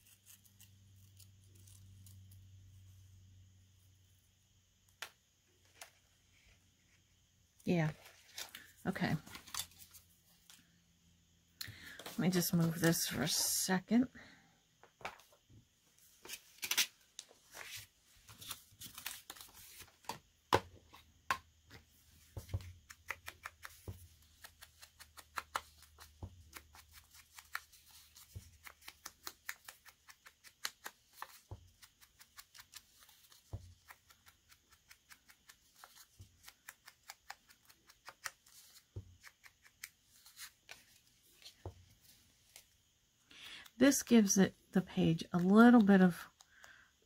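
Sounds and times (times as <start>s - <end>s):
paper crackling and rustling: 16.2s - 20.2s.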